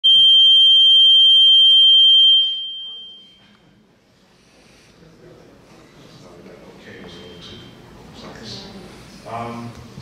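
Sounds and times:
loud high-pitched tone: 0.0 - 3.5.

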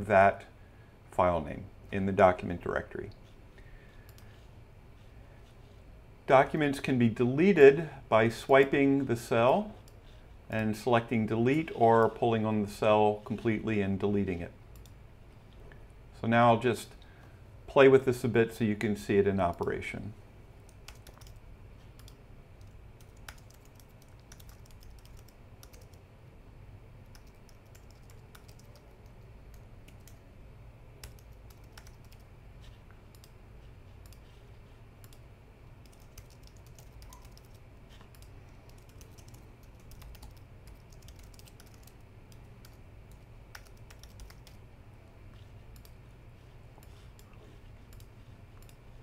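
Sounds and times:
low steady hum: 0.0 - 49.0
typing on computer keyboard: 20.7 - 21.4, 22.0 - 26.0, 27.1 - 30.2, 31.0 - 32.2, 35.8 - 44.6.

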